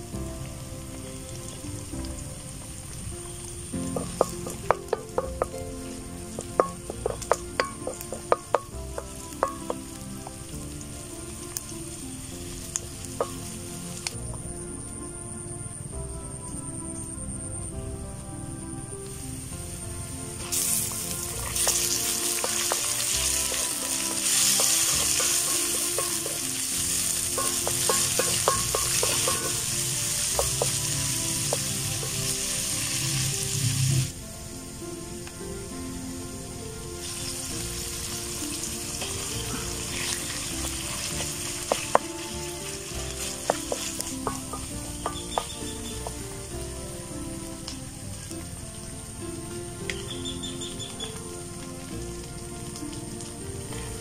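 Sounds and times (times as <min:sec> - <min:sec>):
meat sizzling in hot oil: 0:00.0 - 0:14.6, 0:19.2 - 0:54.0
scattered knocks: 0:03.9 - 0:05.6, 0:06.4 - 0:10.0, 0:27.1 - 0:32.3, 0:43.5 - 0:46.2
spatula clicking in wok: 0:20.9 - 0:30.8.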